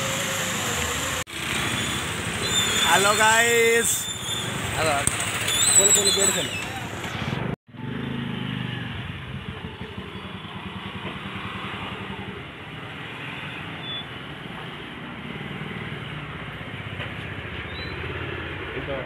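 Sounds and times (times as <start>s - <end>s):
motorcycle engines idling: 8.0s - 12.8s.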